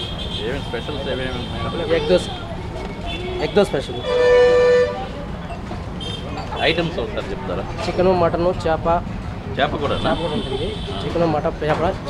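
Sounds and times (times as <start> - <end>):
vehicle horn honk: 3.1 - 5.2, 9.8 - 11.0.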